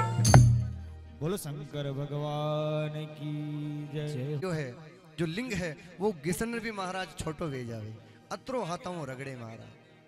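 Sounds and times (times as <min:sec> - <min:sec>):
man singing devotional chant: 0:01.2 - 0:10.0.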